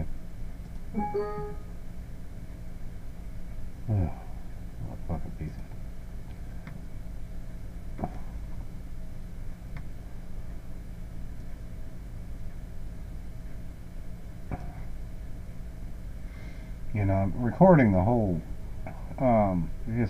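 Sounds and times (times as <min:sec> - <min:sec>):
low background hum: 0:00.0 - 0:20.0.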